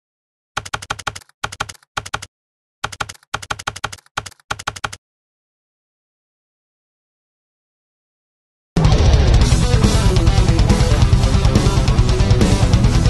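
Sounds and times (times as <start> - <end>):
computer keyboard keystrokes: 0.6 - 5.0.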